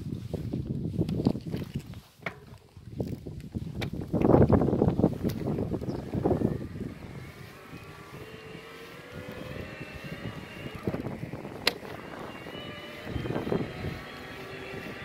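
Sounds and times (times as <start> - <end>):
wind gusting on microphone: 0.0 - 15.0
electric motor whining: 4.4 - 15.0.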